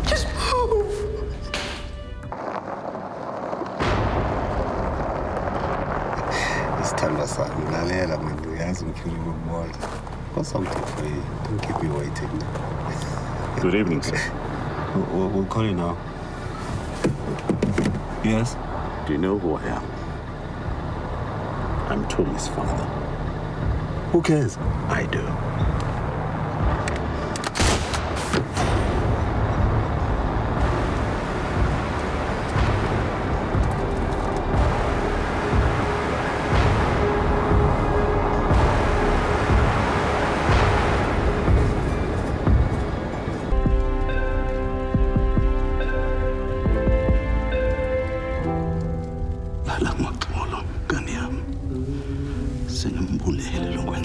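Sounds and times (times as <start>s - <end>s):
car engine idling: 4.4s - 27.6s, 28.8s - 54.0s
dramatic background music: 18.0s - 54.0s.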